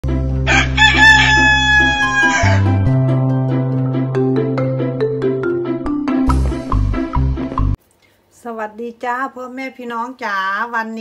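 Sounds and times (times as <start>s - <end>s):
background music: 0.0s - 7.8s
rooster crowing: 0.5s - 2.9s.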